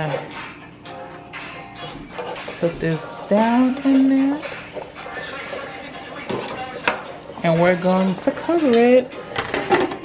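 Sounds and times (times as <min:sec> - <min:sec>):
oil bubbling and sizzling in fryer: 0:02.1 - 0:08.7.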